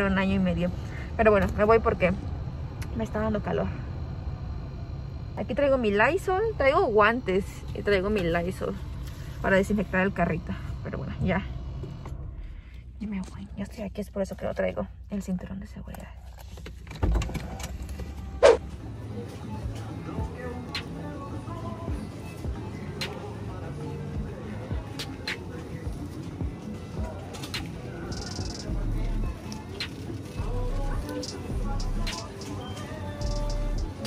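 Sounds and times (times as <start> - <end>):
background music: 18.3 - 34.0
faint voices: 18.6 - 34.0.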